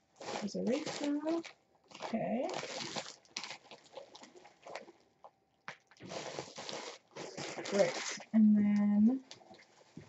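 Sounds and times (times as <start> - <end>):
plastic packaging crinkling: 0.0 - 5.0, 5.7 - 10.0.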